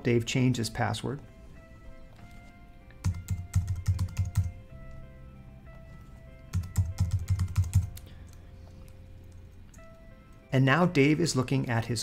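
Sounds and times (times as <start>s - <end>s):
computer keyboard typing: 3.0s - 4.6s, 6.0s - 8.4s.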